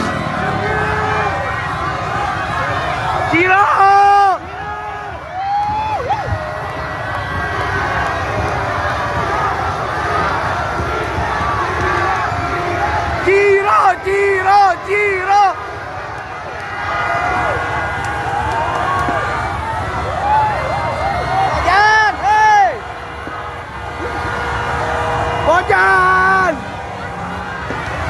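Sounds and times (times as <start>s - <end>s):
crowd chanting: 0.0s - 5.2s, 6.2s - 28.0s
crowd din: 0.0s - 28.0s
crowd shouting in unison: 0.0s - 28.0s.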